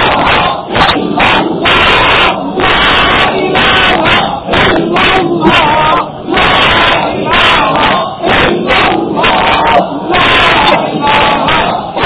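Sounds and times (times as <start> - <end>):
man preaching loudly: 0.0 - 11.6.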